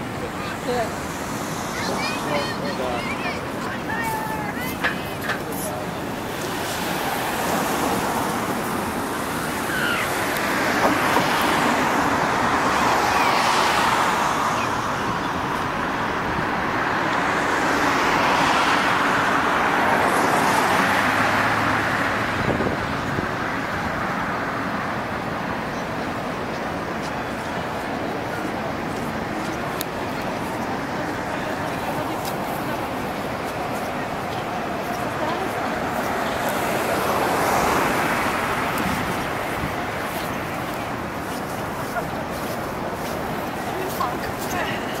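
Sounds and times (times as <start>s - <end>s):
cars passing on road: 0.0s - 45.0s.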